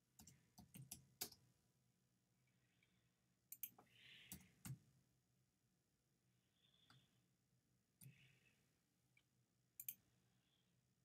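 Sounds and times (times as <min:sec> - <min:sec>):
keyboard and mouse clicks: 0:00.2 - 0:01.5, 0:03.5 - 0:04.8, 0:09.2 - 0:10.0.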